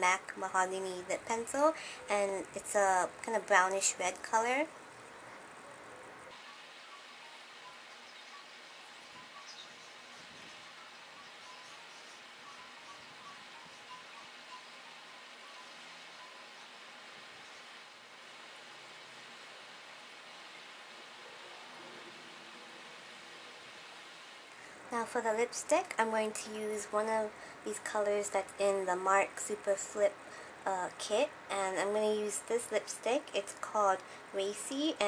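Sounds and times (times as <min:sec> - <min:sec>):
faint recording hiss: 0:00.0 - 0:35.0.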